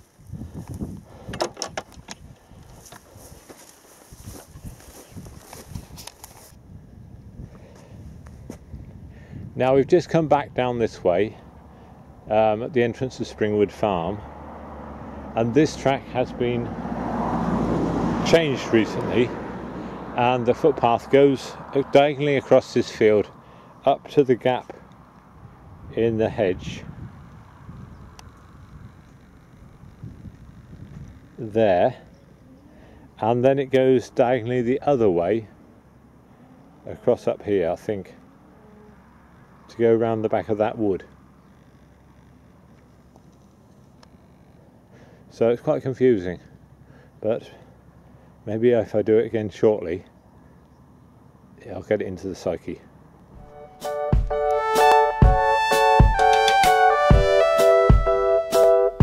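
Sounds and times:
microphone handling noise: 0.0s - 9.6s, 26.8s - 31.4s
wind buffeting microphone: 0.0s - 12.3s, 25.2s - 32.4s
low outdoor rumble: 0.0s - 53.7s.

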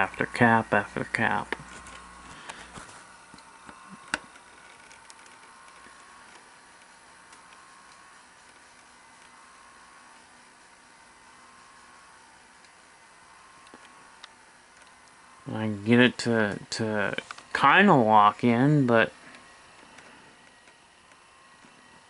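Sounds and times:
thin wavering motor whine: 0.0s - 22.0s.

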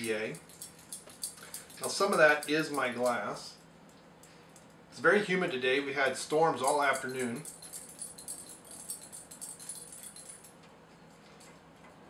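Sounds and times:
collar tags jingling: 0.0s - 4.8s, 6.3s - 10.7s.

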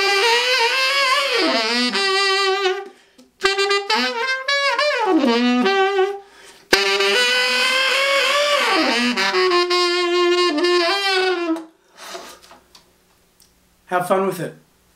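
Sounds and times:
tenor saxophone growled phrase: 0.0s - 11.6s.

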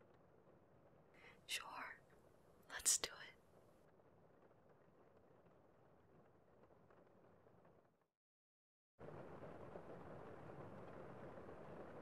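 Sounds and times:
person whispering: 1.4s - 2.0s, 2.7s - 3.4s.

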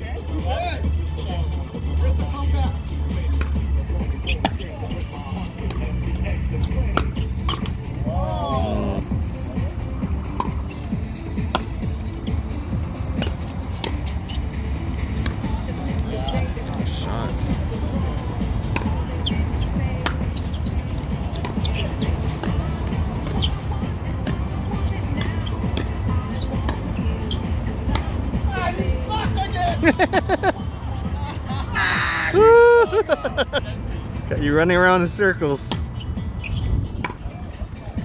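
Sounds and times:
background music: 0.0s - 38.0s
paddles hitting plastic ball: 6.9s - 7.8s.

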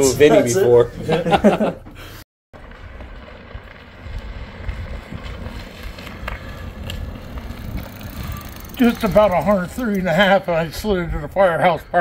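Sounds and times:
bike tires rolling on asphalt: 2.5s - 12.0s
wind buffeting microphone: 2.6s - 11.9s.

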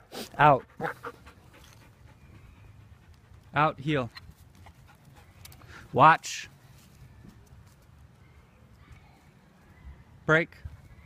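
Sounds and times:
dog panting: 0.5s - 3.6s, 4.6s - 5.9s.

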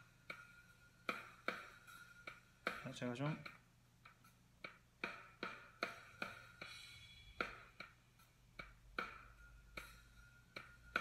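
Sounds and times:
faint drum beat through laptop speakers: 0.0s - 11.0s.

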